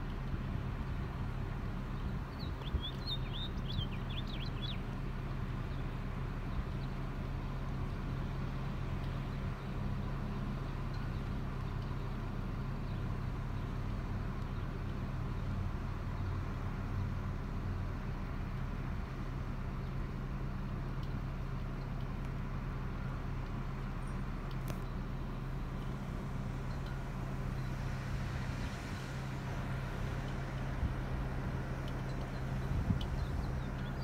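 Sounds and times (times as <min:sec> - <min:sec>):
car engine idling: 0:00.0 - 0:34.0.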